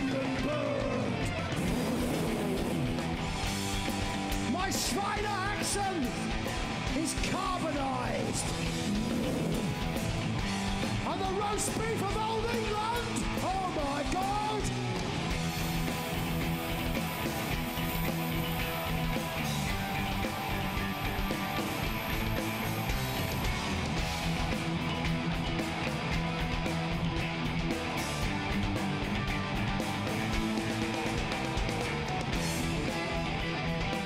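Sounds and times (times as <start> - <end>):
heavy metal band playing: 0.0 - 34.0.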